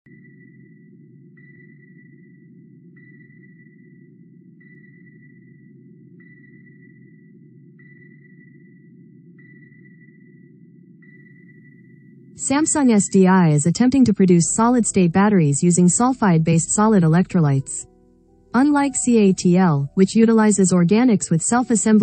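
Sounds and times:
high sonar ping: 0.1s - 22.0s.

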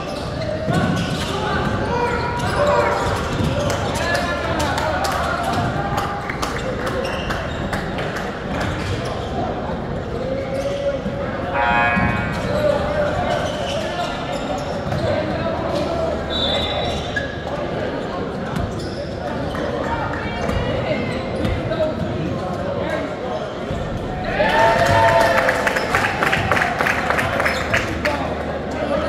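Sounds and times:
voices echoing in a hall: 0.0s - 29.0s.

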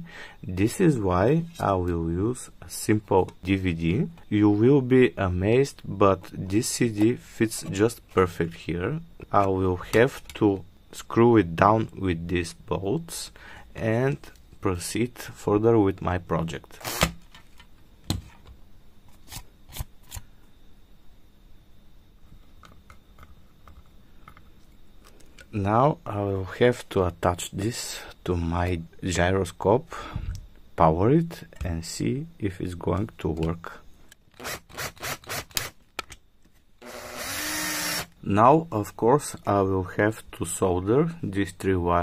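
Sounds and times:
power screwdriver whirring: 16.8s - 17.1s, 36.8s - 38.2s.

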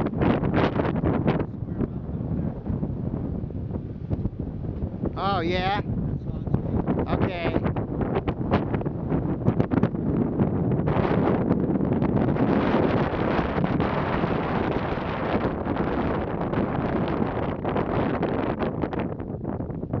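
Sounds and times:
wind blowing across microphone: 0.0s - 20.0s.

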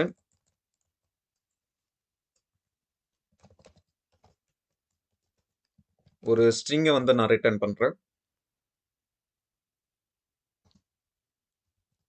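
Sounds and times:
computer keyboard keystrokes: 3.4s - 4.6s.

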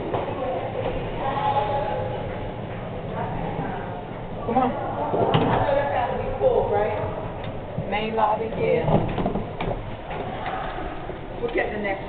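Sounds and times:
elevator car noise: 0.0s - 12.0s.

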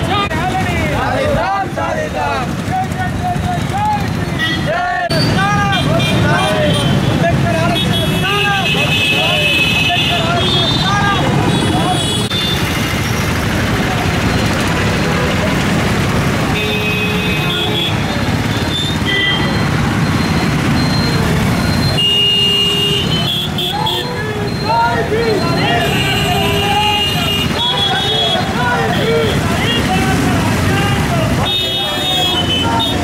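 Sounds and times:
people's voices: 0.0s - 33.0s
street traffic: 0.0s - 33.0s
vehicle horns: 4.2s - 13.4s, 16.3s - 33.0s.

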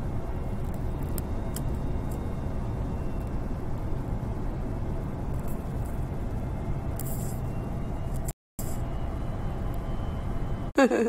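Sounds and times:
jet engines and airflow rumble: 0.0s - 11.0s.

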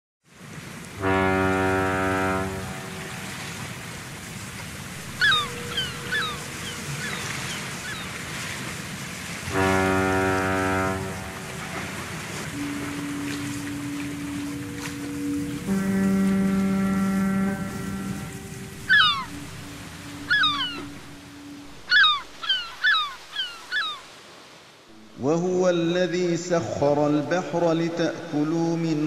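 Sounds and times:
sea and surf: 0.2s - 29.0s
deep ship's horn blasts: 0.8s - 21.9s
birds calling: 4.8s - 24.3s
steady low tone: 9.5s - 22.0s.

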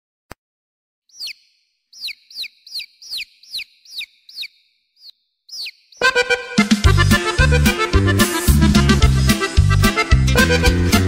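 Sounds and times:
bird chirping: 1.1s - 6.8s.

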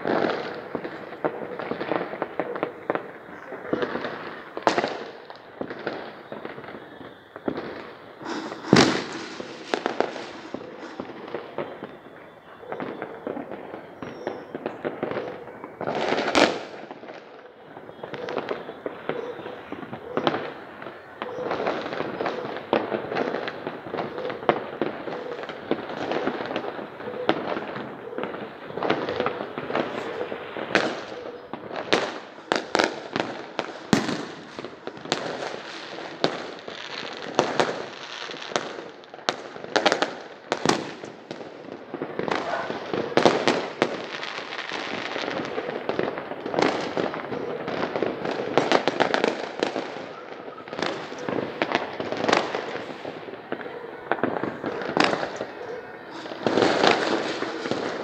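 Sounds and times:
loud firework booms: 0.0s - 20.6s, 21.3s - 58.0s
fireworks crackling and popping: 0.0s - 58.0s.

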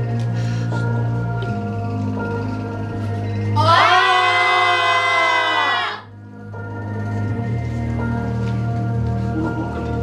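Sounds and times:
voices wailing together: 3.6s - 6.1s.

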